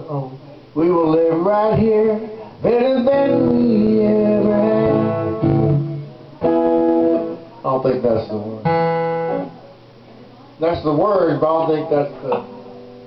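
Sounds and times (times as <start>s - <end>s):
strummed acoustic guitar: 0.8s - 9.6s
man singing long notes: 0.9s - 6.0s.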